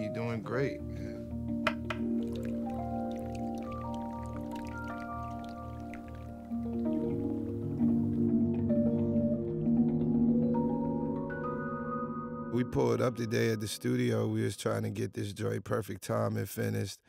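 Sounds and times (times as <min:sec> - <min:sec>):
faint water drips: 0:01.8 - 0:08.3.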